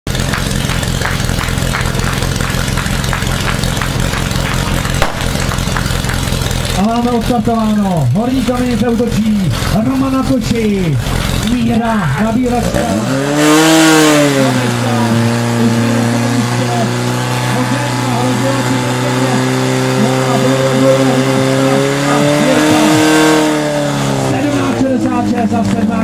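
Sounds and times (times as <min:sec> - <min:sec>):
pump engine running at high revs: 0:00.0 - 0:26.0.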